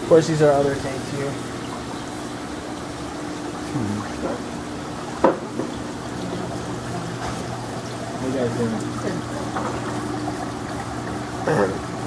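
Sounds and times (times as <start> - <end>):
steady low hum: 0.0 - 12.0
water trickling and splashing: 0.0 - 12.0.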